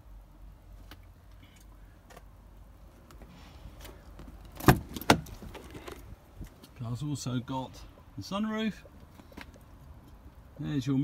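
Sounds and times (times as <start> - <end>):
car door latch clunks: 4.5 - 6.0.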